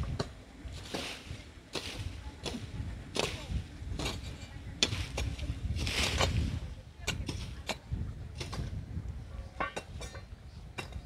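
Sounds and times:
wind rumble on microphone: 0.0 - 11.0
swishing strokes scraping dry ground: 0.6 - 9.6.

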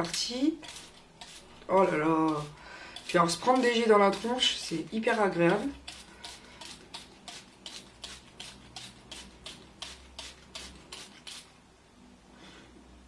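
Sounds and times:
spray bottle spraying water: 0.0 - 11.5.

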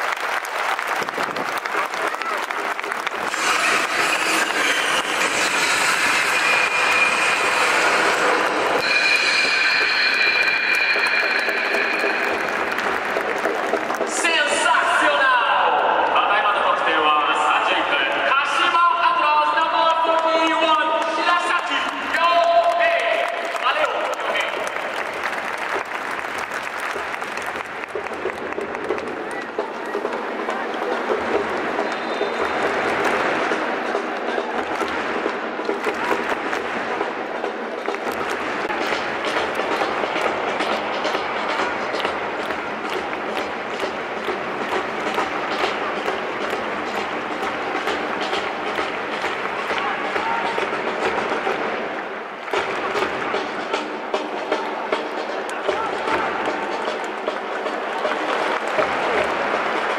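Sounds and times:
crowd clapping: 0.0 - 59.9.

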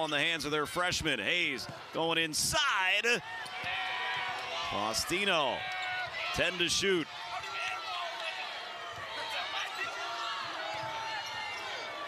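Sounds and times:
players and crowd voices: 0.0 - 12.0.

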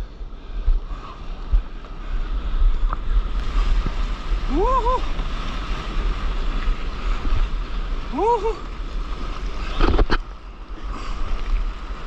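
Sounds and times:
whitewater spray rushing: 3.1 - 10.1.

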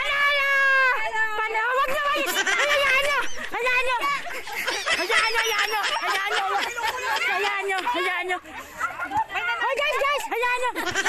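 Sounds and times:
high-pitched voices chattering: 1.7 - 11.0.

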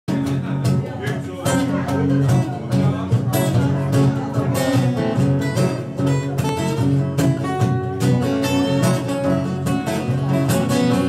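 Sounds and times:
acoustic guitar strumming: 0.1 - 11.0.

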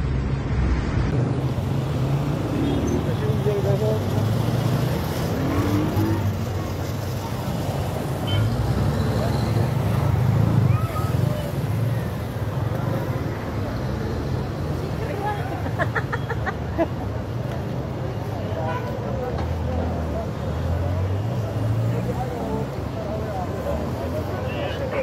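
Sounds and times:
rumble of cars and engines: 0.0 - 25.0.

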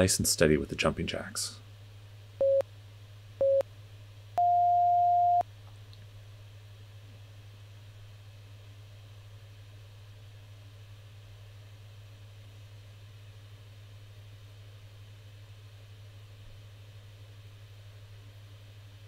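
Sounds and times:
longer higher beep: 4.4 - 5.4
short timer beeps: 4.4 - 5.4.

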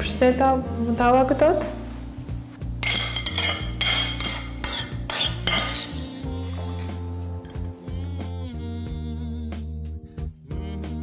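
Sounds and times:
quiet background music: 0.0 - 11.0
spoon clinking against china bowl: 2.8 - 6.5.

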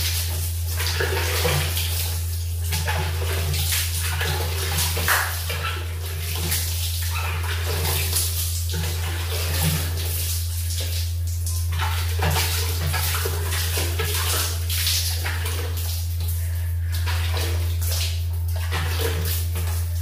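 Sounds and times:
steady low hum: 0.0 - 20.0
water running and splashing: 0.0 - 20.0.

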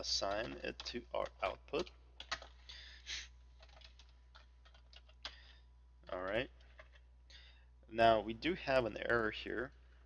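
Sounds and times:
faint keyboard typing: 0.0 - 7.1
low steady hum: 0.0 - 10.0.

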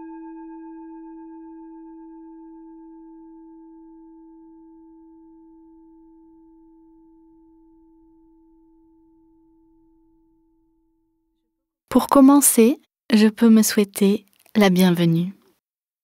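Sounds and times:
singing bowl ringing: 0.0 - 10.9.

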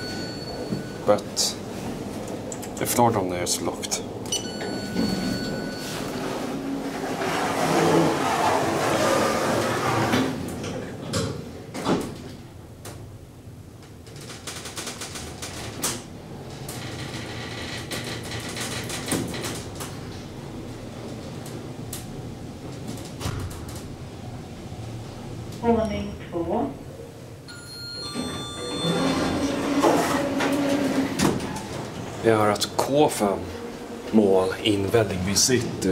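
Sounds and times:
elevator running noise: 0.0 - 35.9
elevator doors sliding shut: 4.1 - 13.1, 14.2 - 25.6, 27.5 - 35.9.

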